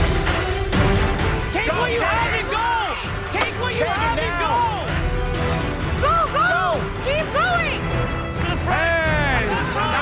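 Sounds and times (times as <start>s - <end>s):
background music: 0.0s - 10.0s
people yelling excitedly: 1.5s - 4.9s, 6.0s - 7.7s.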